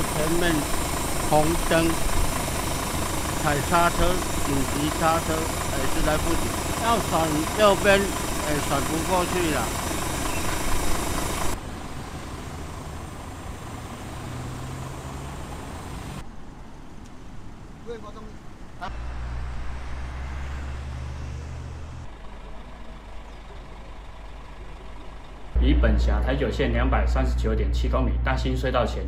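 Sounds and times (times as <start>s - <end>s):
road traffic noise: 0.0s - 27.6s
vehicle engine idling: 0.0s - 29.0s.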